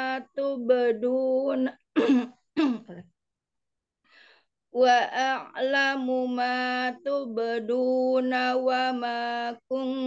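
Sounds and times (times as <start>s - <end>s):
woman chanting recitation: 0.0s - 1.8s, 4.8s - 10.0s.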